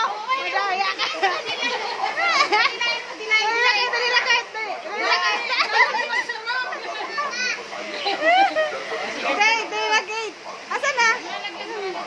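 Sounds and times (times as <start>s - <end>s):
children chattering and shouting: 0.0s - 12.0s.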